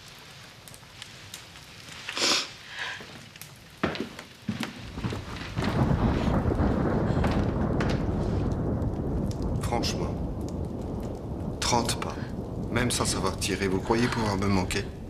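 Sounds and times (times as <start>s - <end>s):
rain: 0.0s - 15.0s
short hiss: 2.1s - 2.6s
low rumble of thunder: 4.9s - 15.0s.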